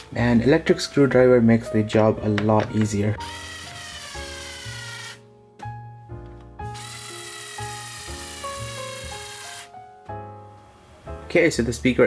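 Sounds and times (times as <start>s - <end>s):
electric screwdriver motor whining: 3.2s - 5.2s, 6.7s - 9.7s.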